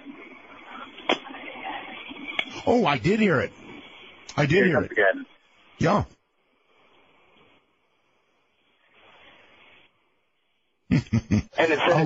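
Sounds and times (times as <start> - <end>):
faint telephone line hiss: 0.0 - 12.0.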